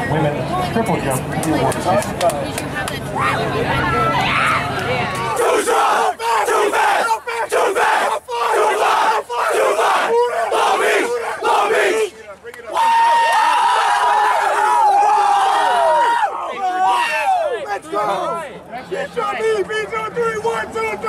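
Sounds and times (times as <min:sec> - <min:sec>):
group yell: 0:03.9 - 0:12.1, 0:12.7 - 0:18.4
young men shouting a chant: 0:05.2 - 0:21.0.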